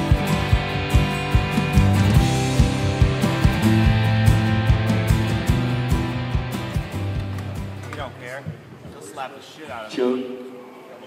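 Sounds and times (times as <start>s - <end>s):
electric bass guitar notes: 0.0s - 8.2s.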